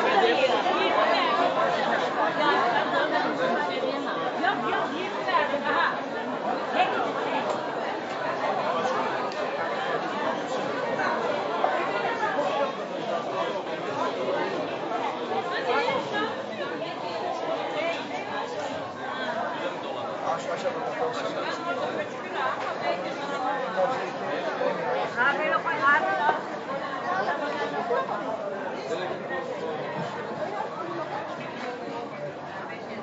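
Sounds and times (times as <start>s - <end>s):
crowd chatter: 0.0s - 33.0s.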